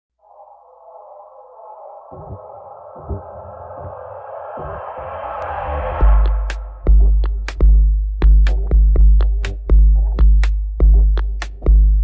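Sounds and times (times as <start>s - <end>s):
filtered synthesizer wash: 0.1s - 7.5s.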